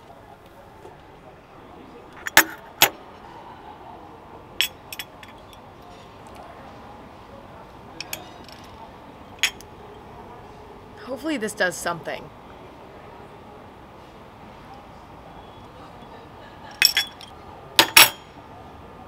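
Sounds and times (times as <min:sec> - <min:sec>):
low background noise: 0:00.0 - 0:19.0.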